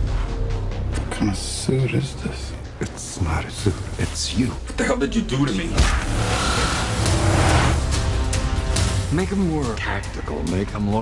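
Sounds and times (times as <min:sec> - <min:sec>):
loud rushing noise: 0:06.1 - 0:08.1.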